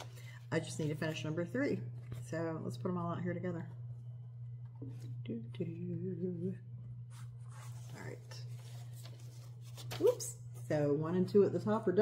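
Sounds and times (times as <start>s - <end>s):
steady low hum: 0.0s - 12.0s
woman humming: 5.4s - 6.7s.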